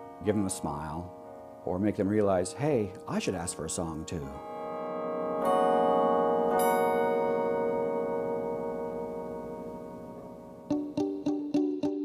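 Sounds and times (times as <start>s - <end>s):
carillon chimes ringing: 0.0s - 10.6s.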